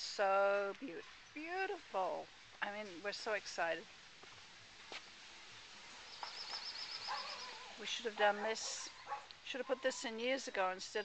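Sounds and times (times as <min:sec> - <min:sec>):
faint outdoor hiss: 0:00.0 - 0:11.0
songbird high trill: 0:06.0 - 0:08.1.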